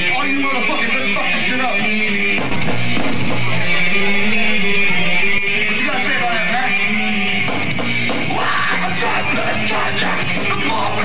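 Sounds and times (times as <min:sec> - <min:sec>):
distorted electric guitar riff: 0:00.0 - 0:11.0
drums: 0:00.0 - 0:11.0.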